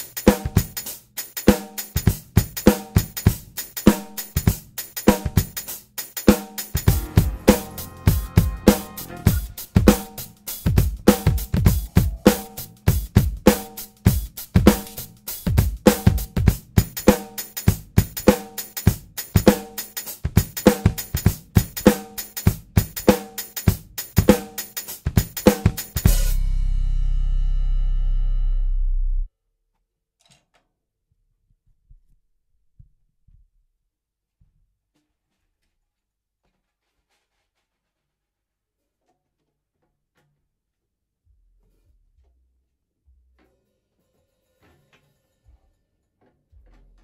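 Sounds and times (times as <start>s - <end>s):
drum kit playing steady groove: 0.0s - 28.5s
faint low thumps at drum kit: 6.8s - 13.5s.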